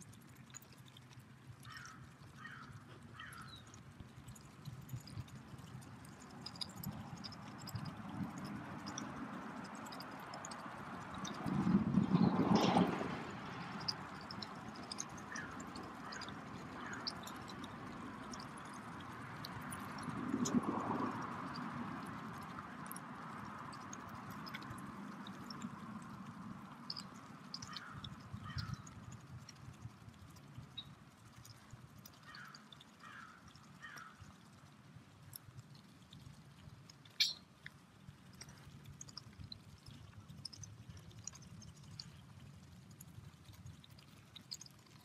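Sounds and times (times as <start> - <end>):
beaks pecking among pebbles: 0.0 - 45.0
geese calling softly: 1.7 - 3.7.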